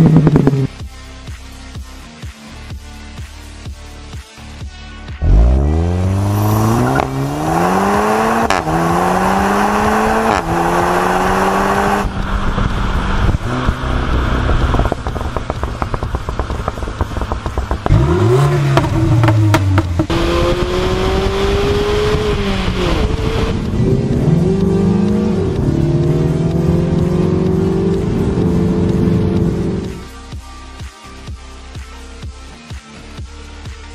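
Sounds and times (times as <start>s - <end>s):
car engines accelerating hard: 0.0s - 0.8s, 5.2s - 30.1s
engine revs blipping: 5.2s - 30.0s.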